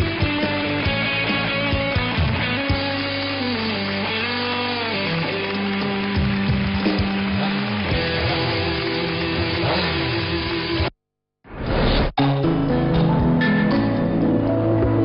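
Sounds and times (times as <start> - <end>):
sliding guitar music: 0.0 - 10.9, 12.2 - 15.0.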